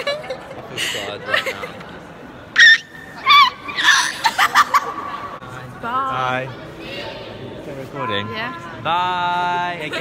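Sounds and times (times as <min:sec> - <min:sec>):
girl shrieking laughter: 0:02.6 - 0:05.1.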